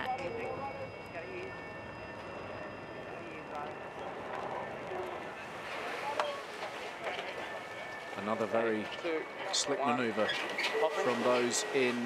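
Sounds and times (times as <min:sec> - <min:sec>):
faint indistinct voices: 0:00.0 - 0:12.0
steady background noise: 0:00.0 - 0:12.0.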